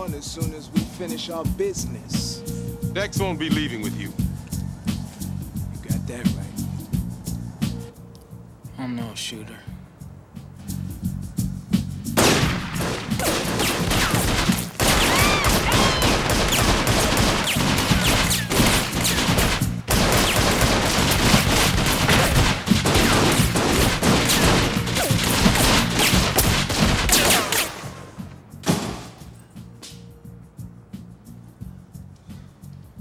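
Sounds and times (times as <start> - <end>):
rapid handgun shots: 12.2 - 29.1.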